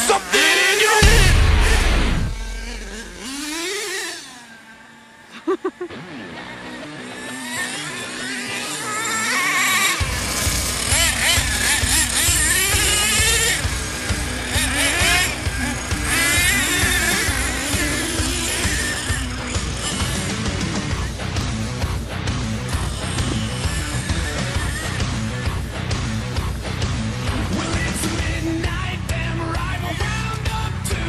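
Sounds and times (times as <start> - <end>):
rock music: 0.0 - 3.6, 5.4 - 31.0
small engines revving: 0.0 - 31.0.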